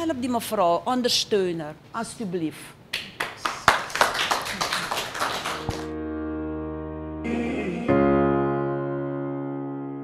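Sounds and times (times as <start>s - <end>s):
group applauding: 3.0s - 5.9s
electric piano chord: 5.7s - 10.0s.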